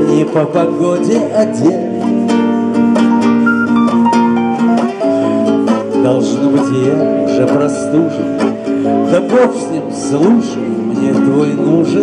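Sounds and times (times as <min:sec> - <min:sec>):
plucked acoustic guitar: 0:00.0 - 0:12.0
electric keyboard held notes: 0:03.4 - 0:05.6.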